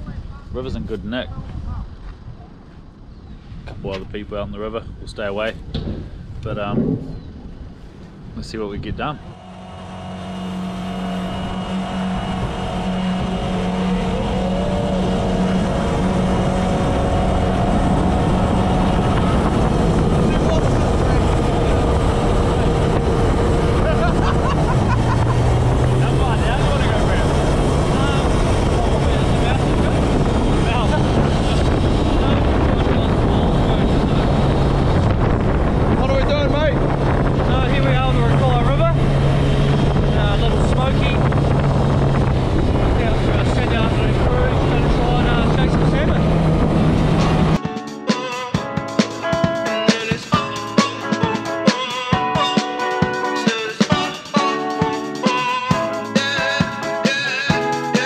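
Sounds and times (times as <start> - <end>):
wind: 0.0 - 58.0
jet boat engine: 5.7 - 58.0.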